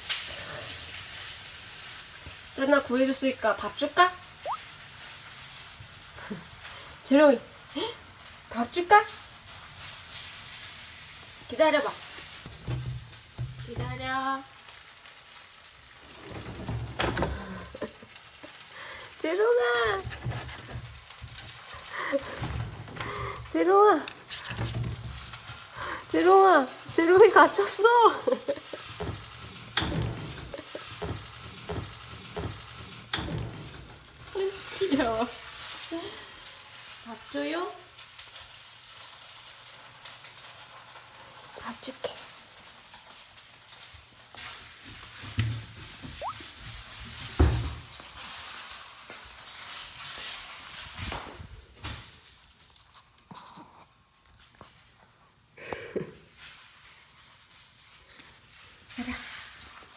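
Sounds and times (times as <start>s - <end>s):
crackly rustling and handling: 9.4s - 53.4s, 56.3s - 59.9s.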